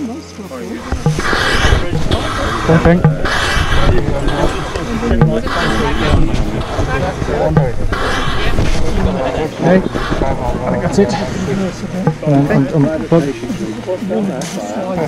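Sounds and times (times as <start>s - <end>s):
loud rushes of noise: 0.8s - 12.4s.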